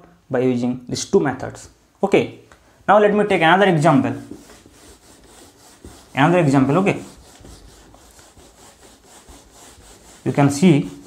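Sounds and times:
duster rubbing on whiteboard: 3.8 - 11.0.

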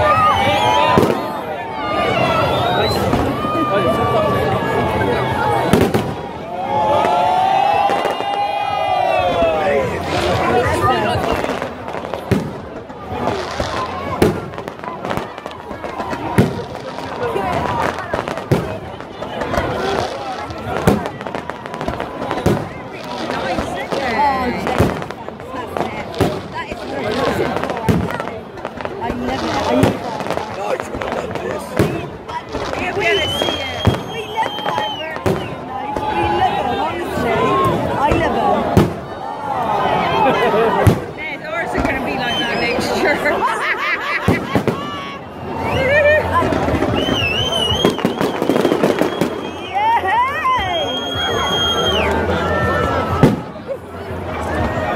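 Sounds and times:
fireworks bangs: 0.0 - 4.0, 4.6 - 39.3, 40.4 - 43.0, 44.0 - 52.0, 52.9 - 54.9
fireworks crackling: 0.0 - 39.4, 40.0 - 54.9
crowd voices: 0.0 - 54.9.

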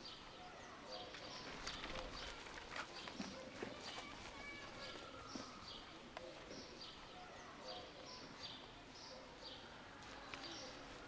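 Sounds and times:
faint footsteps walking past: 1.1 - 6.8.

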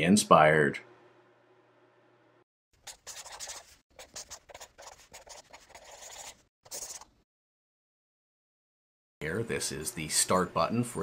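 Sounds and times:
pen scratching on paper: 2.8 - 7.1.

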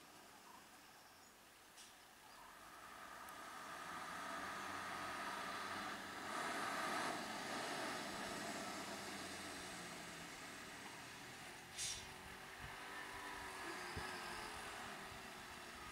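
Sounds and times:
diesel truck engine running: 2.6 - 15.9.

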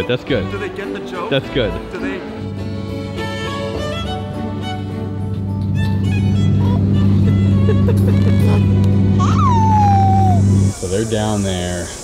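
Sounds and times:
airliner cabin drone: 2.7 - 12.0
high tone sliding down: 9.2 - 11.4.

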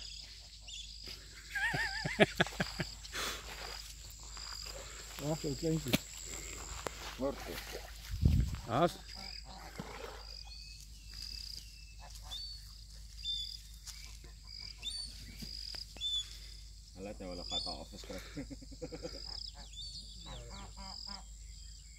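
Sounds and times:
birds whistling: 9.1 - 17.9.

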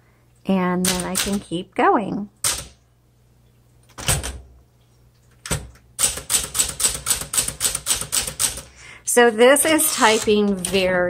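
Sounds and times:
manual typewriter keystrokes: 0.8 - 1.4, 2.4 - 2.8, 5.4 - 8.7.

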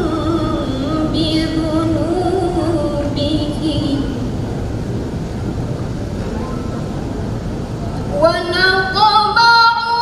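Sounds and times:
low rumble of room noise: 0.0 - 10.0.

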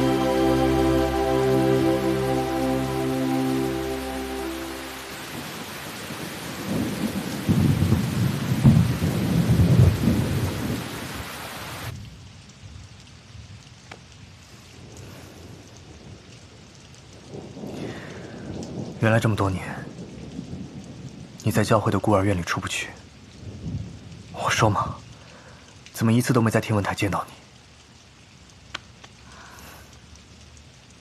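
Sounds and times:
thunder rumbling: 0.0 - 11.3, 17.2 - 21.4
heavy rain falling: 0.0 - 31.0.

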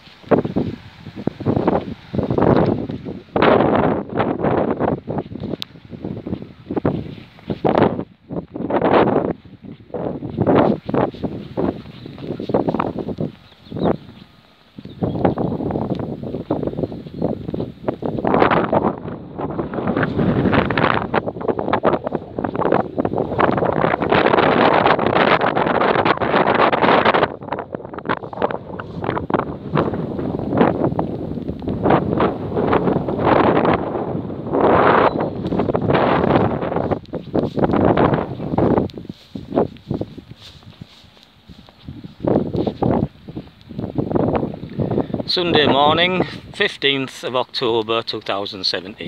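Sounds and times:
wind buffeting microphone: 0.0 - 49.0.

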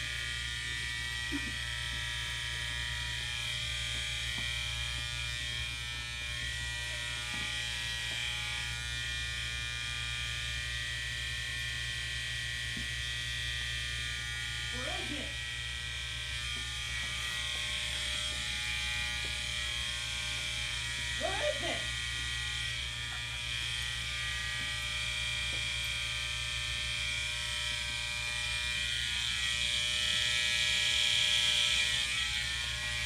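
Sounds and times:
electrical buzz: 0.0 - 33.0.

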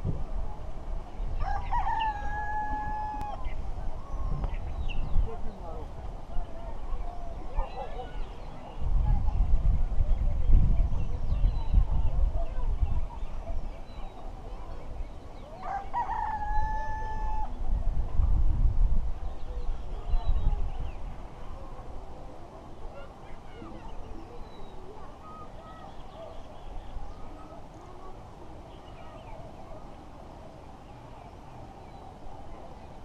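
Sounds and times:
rooster crowing: 1.4 - 3.4, 15.6 - 17.5.

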